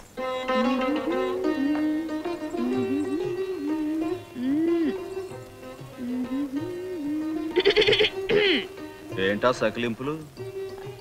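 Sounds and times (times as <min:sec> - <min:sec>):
soundtrack music with held note: 0:00.2 - 0:11.0
person's quavering vocal sound: 0:00.6 - 0:05.1.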